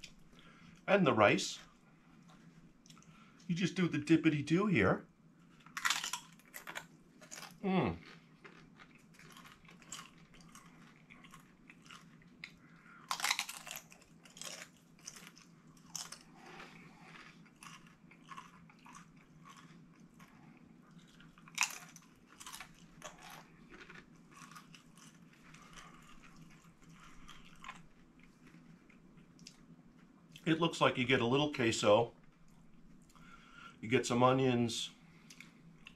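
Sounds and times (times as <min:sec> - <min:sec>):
crunching tortilla chips: 0:05.6 - 0:29.7.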